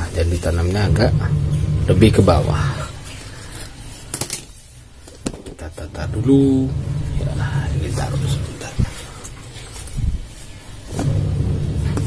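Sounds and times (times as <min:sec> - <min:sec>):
low steady hum: 0:00.0 - 0:03.7, 0:05.8 - 0:10.1, 0:10.9 - 0:12.0.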